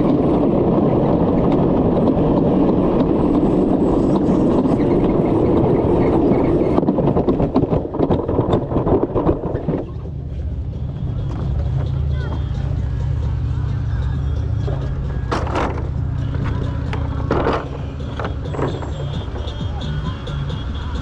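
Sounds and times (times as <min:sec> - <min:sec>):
plastic sled clattering: 0:00.0 - 0:10.2, 0:14.7 - 0:21.0
low machine hum: 0:00.0 - 0:21.0.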